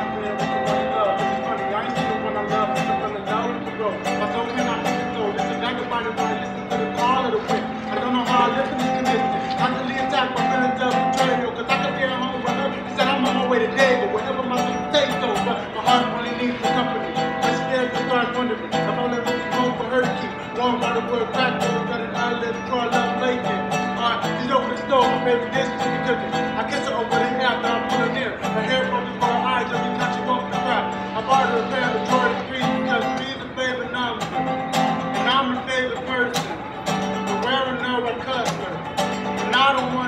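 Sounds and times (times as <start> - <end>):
man singing: 0.0 - 40.0
resonator guitar fingerpicked: 0.0 - 40.0.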